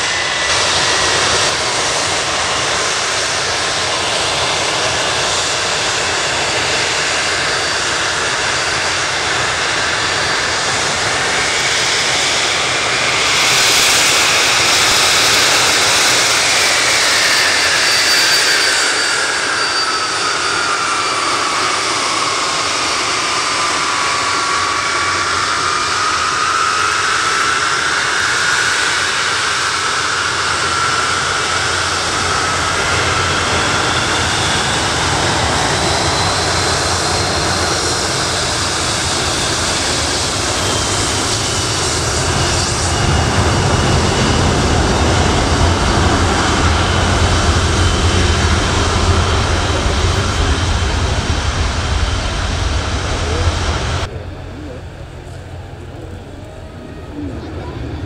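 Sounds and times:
deep jet rumble: 0:00.0 - 0:58.0
jet engine whine: 0:00.0 - 0:58.0.

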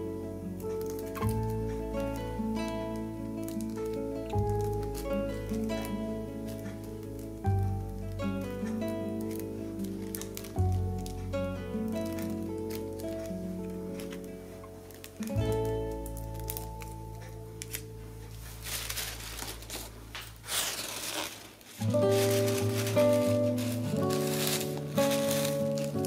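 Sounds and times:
gentle guitar music: 0:00.0 - 0:26.0
tissue paper crinkling: 0:00.7 - 0:26.0.

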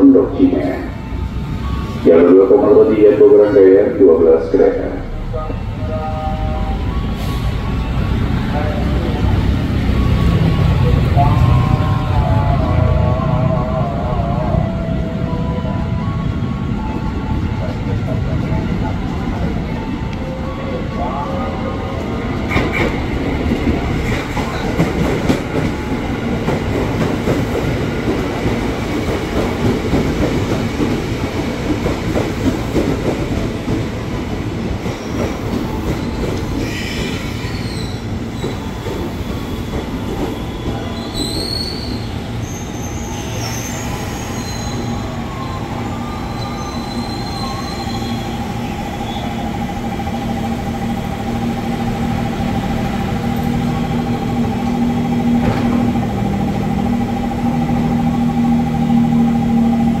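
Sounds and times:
electric train braking: 0:00.0 - 0:26.2, 0:34.9 - 1:00.0
train whine and low hum: 0:00.0 - 1:00.0
high brake squeals: 0:05.6 - 0:09.2, 0:35.0 - 0:49.6.

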